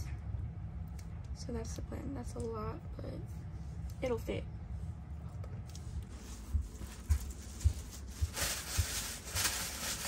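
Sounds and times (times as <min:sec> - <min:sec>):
clothes rustling: 0:05.7 - 0:10.0
soft low thuds: 0:06.0 - 0:09.4
plastic bag rustling: 0:06.1 - 0:10.0.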